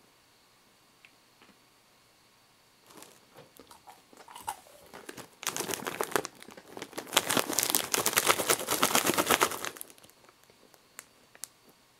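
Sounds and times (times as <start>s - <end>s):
foil snack bag crinkling: 2.8s - 11.6s.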